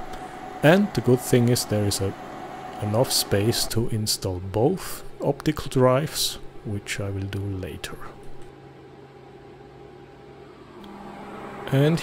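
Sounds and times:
server cooling fans whirring: 0.0s - 12.0s.

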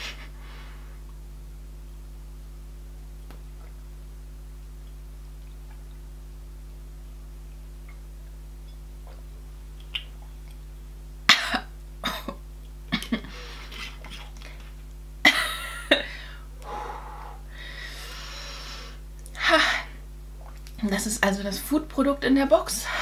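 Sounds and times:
woman coughing: 11.3s - 12.4s
woman breathing out hard: 16.1s - 19.0s.

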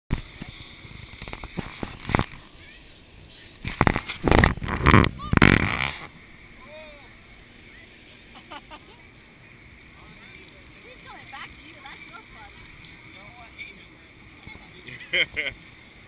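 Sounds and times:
gulls calling: 2.2s - 15.4s.

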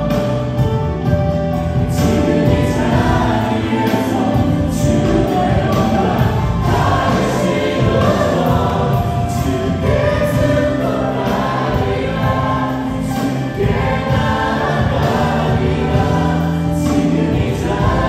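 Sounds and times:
band with drums: 0.0s - 18.0s
people singing together: 1.7s - 18.0s.

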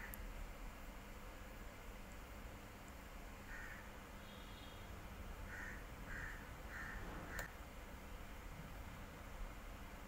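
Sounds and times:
low steady hum: 0.0s - 10.0s
crow cawing: 3.5s - 3.9s, 5.5s - 7.4s.

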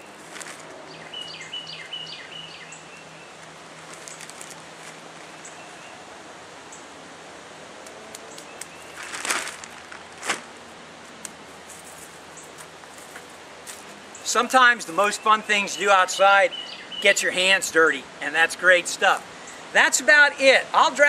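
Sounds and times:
birds chirping and singing: 0.9s - 3.4s, 14.1s - 17.6s
plastic bag crinkle: 3.8s - 5.0s, 8.8s - 10.5s
plastic bag rustling: 3.8s - 5.4s, 8.8s - 10.6s.

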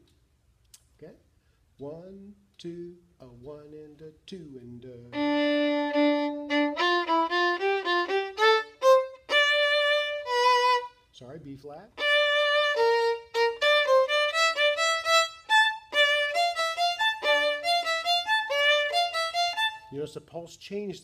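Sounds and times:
violin playing short bowed notes: 5.0s - 11.1s, 12.0s - 20.1s.

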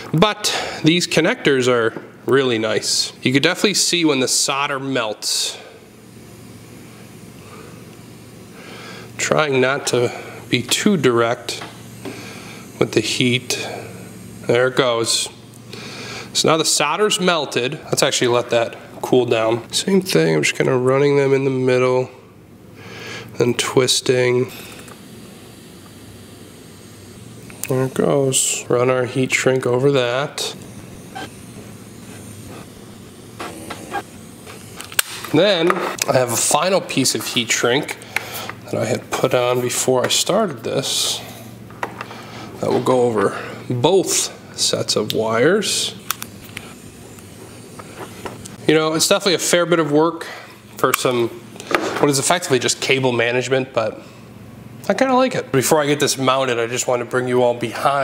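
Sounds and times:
soldering torch hissing: 0.0s - 58.0s.

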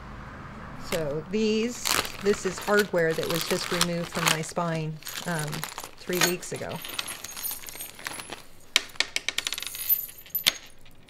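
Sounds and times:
plastic bag rustling: 0.8s - 8.8s
metal screws clinking: 1.8s - 11.0s.

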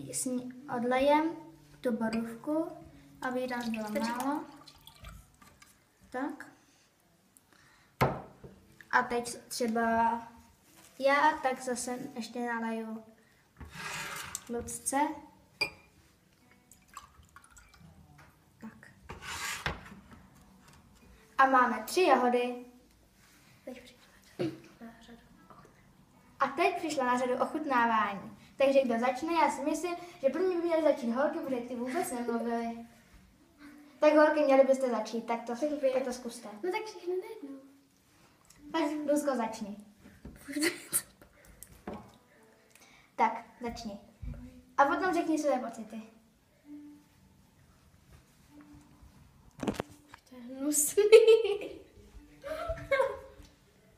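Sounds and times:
water poured between glasses: 3.5s - 5.8s, 16.6s - 18.0s.

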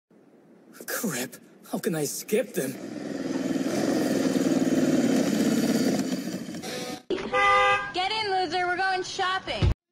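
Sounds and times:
motorcycle engine throbbing: 2.8s - 7.1s.

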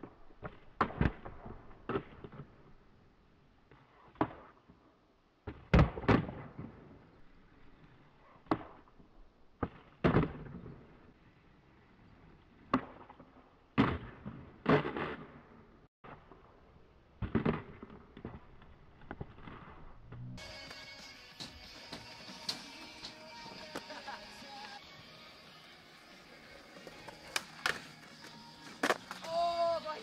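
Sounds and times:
skateboard wheels rolling: 17.3s - 30.0s
skateboard clacks and thuds: 28.7s - 29.4s.

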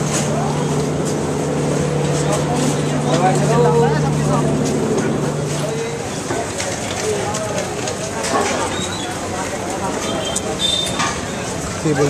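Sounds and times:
low engine hum: 0.0s - 7.2s
chatter of voices: 0.0s - 12.0s
street traffic clicks and knocks: 0.0s - 12.0s.

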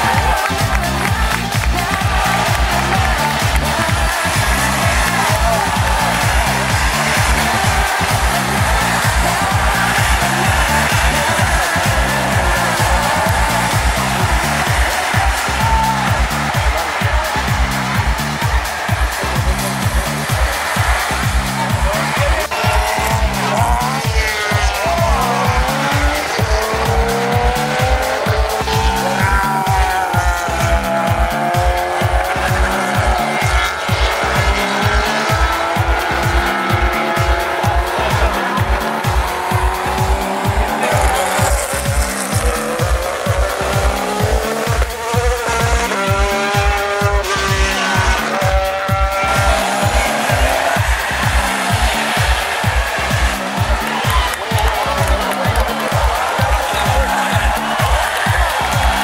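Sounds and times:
car engine revving: 0.0s - 59.0s
music with steady beat: 0.0s - 59.0s
racing car engines: 0.0s - 59.0s.

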